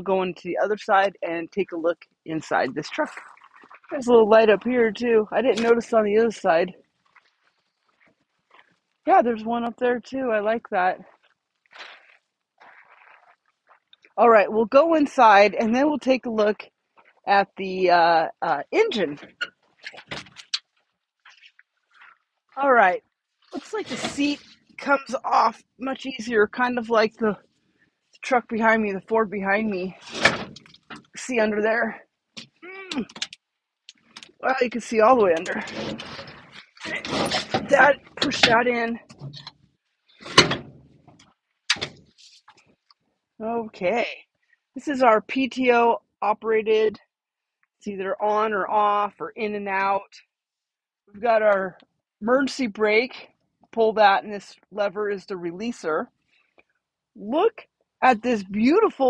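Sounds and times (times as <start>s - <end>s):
footsteps on gravel: 11.1s - 13.8s.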